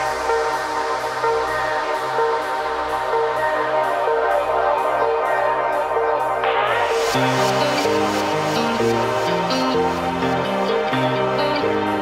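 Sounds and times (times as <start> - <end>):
trance electronic dance music: 0.0 - 12.0.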